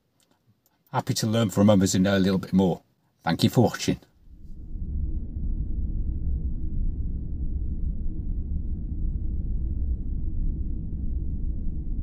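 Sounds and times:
deep low rumble: 4.1s - 12.0s.

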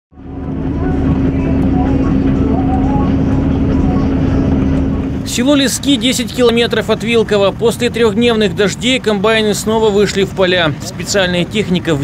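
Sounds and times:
combine harvester engine drone: 0.1s - 12.0s.

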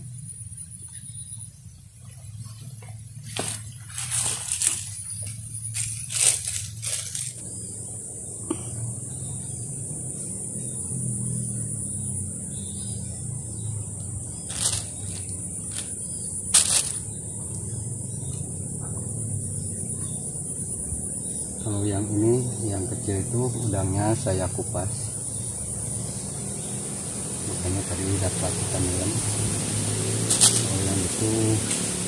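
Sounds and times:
insects droning: 0.0s - 32.0s.

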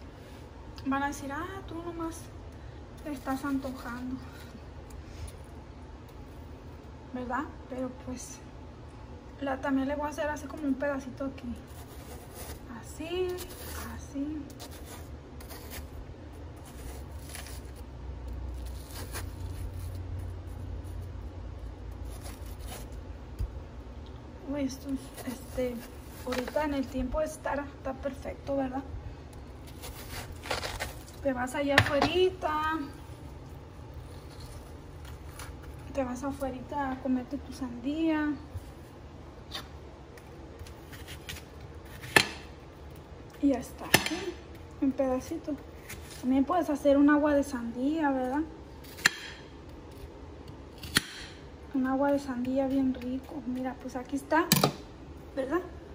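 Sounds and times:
knife scraping watermelon: 11.4s - 21.3s, 21.9s - 23.1s, 24.7s - 27.1s, 29.6s - 36.4s, 39.5s - 42.5s, 45.3s - 46.8s.

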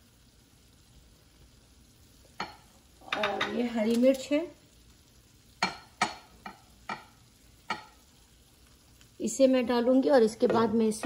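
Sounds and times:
chillies dropped into frying pan: 2.3s - 4.5s, 5.6s - 8.0s.

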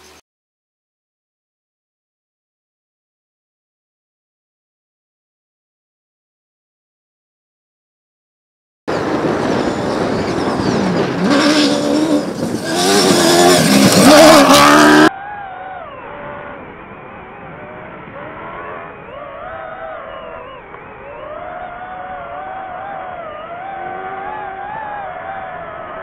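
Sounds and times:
car engine revving hard: 10.8s - 15.1s.

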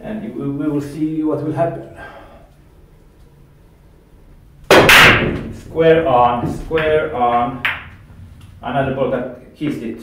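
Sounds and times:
cue ball cracking into balls: 4.7s - 8.5s
pool balls clattering: 4.7s - 8.6s.

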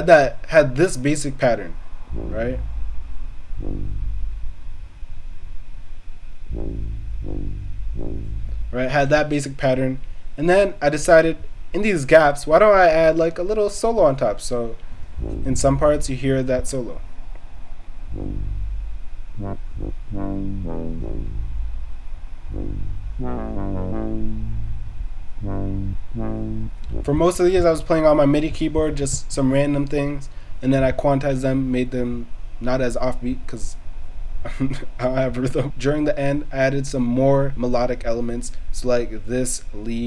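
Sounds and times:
deep synth bass tone: 2.1s - 5.2s, 6.5s - 9.1s, 15.0s - 16.4s, 18.1s - 27.8s.

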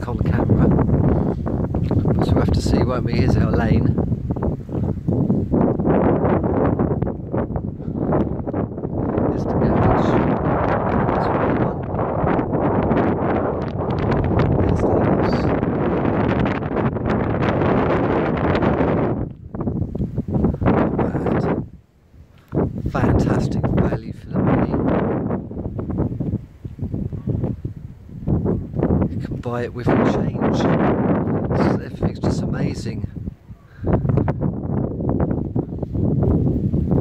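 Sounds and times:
wind buffeting microphone: 0.0s - 37.0s.

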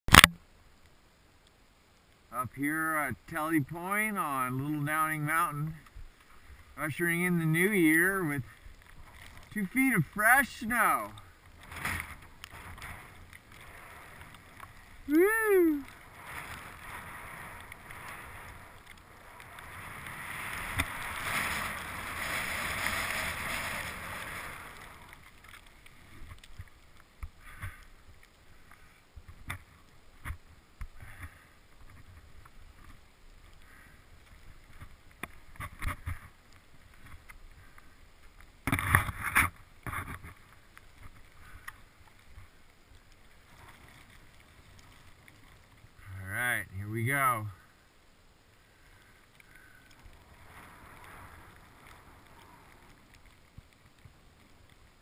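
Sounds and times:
skis hissing through snow: 6.3s - 25.2s, 50.2s - 53.0s
person whooping: 15.1s - 15.9s.

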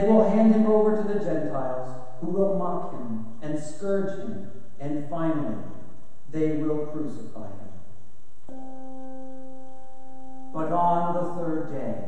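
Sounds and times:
man speaking: 0.0s - 7.8s, 10.5s - 12.0s
steady musical note: 8.4s - 11.9s.

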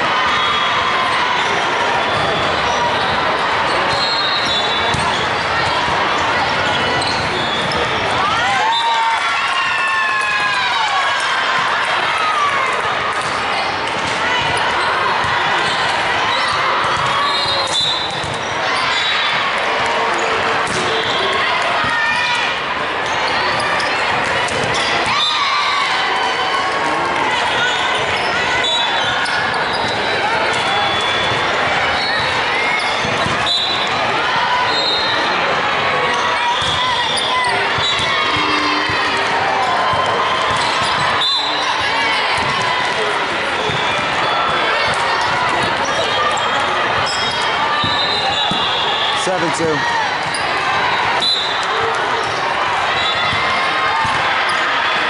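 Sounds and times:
many voices: 0.0s - 55.0s
sneakers squeaking: 0.4s - 9.7s, 13.2s - 55.0s
volleyballs hit and bouncing: 1.0s - 55.0s.

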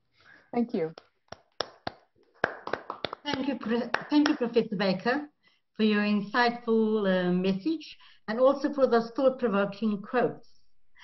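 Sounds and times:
scattered hand claps: 0.9s - 4.6s.

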